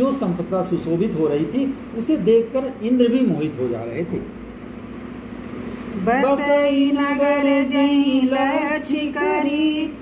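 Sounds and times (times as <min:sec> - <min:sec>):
faint even hum: 0:00.0 - 0:10.0
steady background noise: 0:00.0 - 0:10.0.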